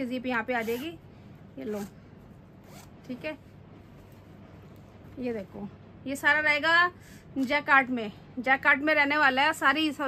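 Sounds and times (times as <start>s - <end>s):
zipper rasp: 0.4s - 1.0s, 1.6s - 3.2s.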